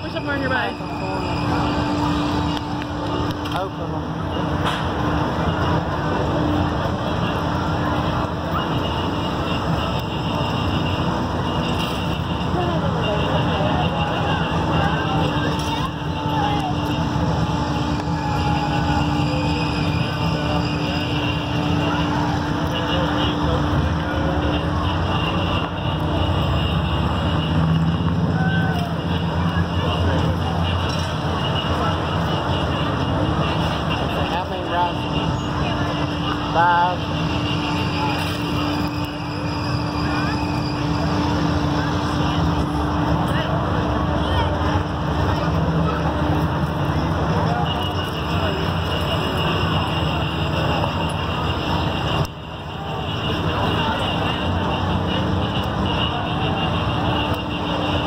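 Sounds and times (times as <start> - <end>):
faint voices: 0.0 - 58.0
ride machinery motor drone: 0.0 - 58.0.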